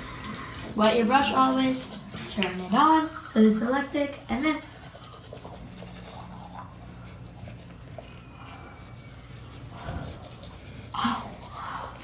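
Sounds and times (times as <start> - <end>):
electric toothbrush humming: 0.0 - 2.0, 2.6 - 12.0
bristles scratching teeth: 3.0 - 12.0.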